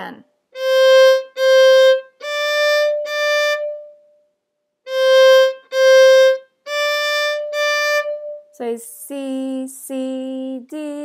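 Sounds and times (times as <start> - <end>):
solo violin notes: 0.5 - 4.1, 4.8 - 8.7.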